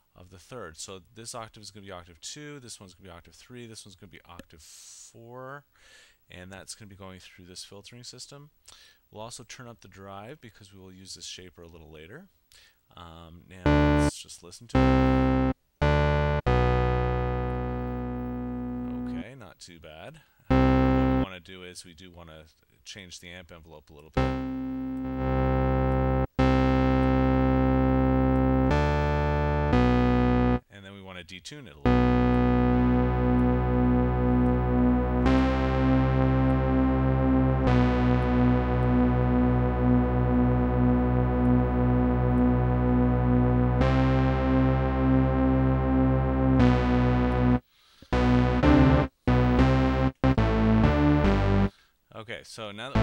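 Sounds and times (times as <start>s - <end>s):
sustained low synthesizer note: 14.8s - 19.2s, 24.2s - 30.6s, 31.9s - 47.6s, 48.2s - 51.7s.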